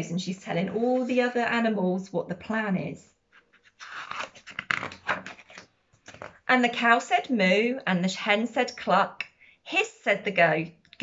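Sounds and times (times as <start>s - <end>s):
paper pages rustling: 3.3s - 6.4s.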